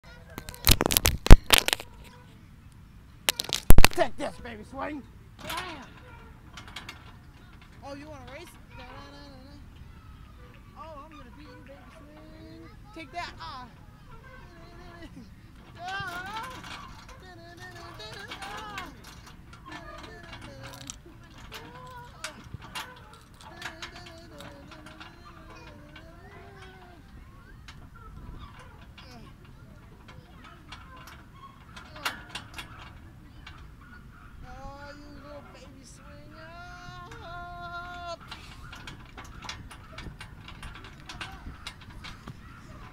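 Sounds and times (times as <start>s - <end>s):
swing chains clinking and creaking: 0.0s - 42.9s
wavering squeaks: 3.3s - 42.9s.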